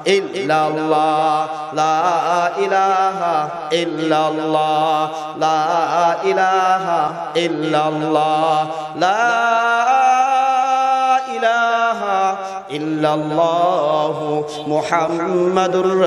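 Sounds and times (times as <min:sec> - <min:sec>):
man chanting with echo: 0:00.0 - 0:16.0.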